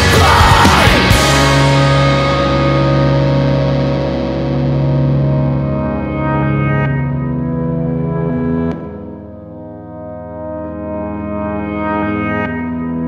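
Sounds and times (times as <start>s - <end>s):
distorted electric guitar chords: 0.0s - 13.0s.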